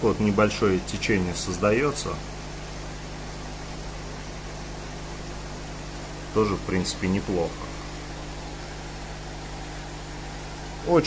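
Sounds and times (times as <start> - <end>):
air pump humming: 0.0 - 11.0.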